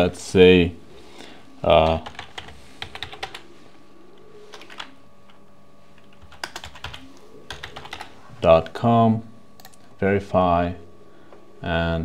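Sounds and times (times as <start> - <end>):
typing on computer keyboard: 1.8 - 3.4, 4.5 - 4.9, 6.0 - 8.1, 9.6 - 9.8.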